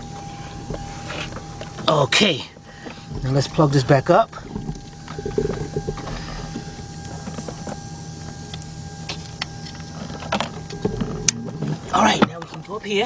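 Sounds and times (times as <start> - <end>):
steady background hum: 0.0 - 13.0.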